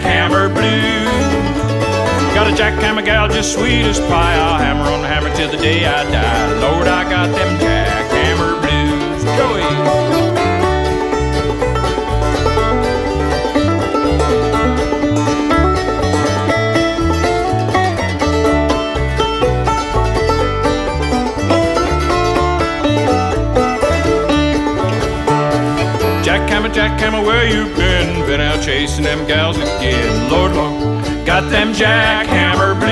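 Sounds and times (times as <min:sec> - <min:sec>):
banjo: 0:00.0 - 0:32.9
bluegrass band playing: 0:00.0 - 0:32.9.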